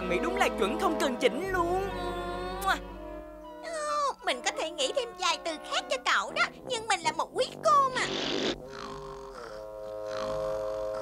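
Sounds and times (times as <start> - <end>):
raspberry blown with tongue: 8.0 - 11.0.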